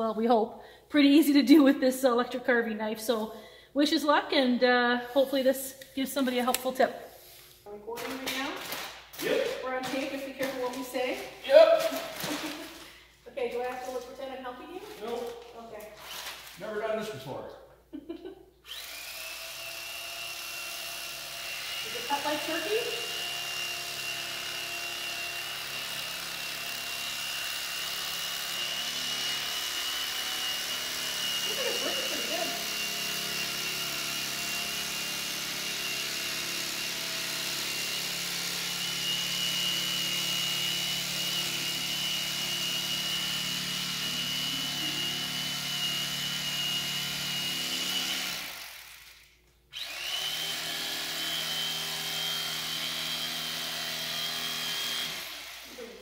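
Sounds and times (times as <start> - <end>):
electric knife sawing through foam: 8.1 - 12.9, 18.7 - 56.0.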